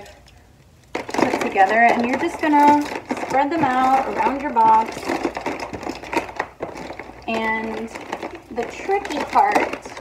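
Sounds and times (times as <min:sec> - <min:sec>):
light bulbs rattling on plastic: 0:00.8 - 0:10.0.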